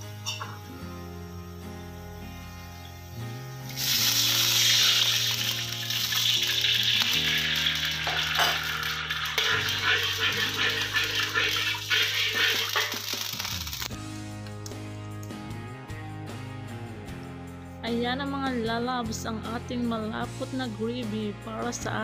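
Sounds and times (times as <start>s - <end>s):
food sizzling in a pan: 0.0s - 13.9s
background music: 0.0s - 22.0s.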